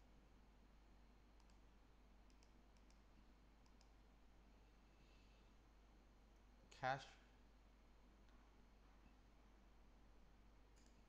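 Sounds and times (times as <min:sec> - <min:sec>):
computer mouse clicks: 0:01.4 - 0:01.6, 0:02.3 - 0:04.0, 0:10.8 - 0:11.0.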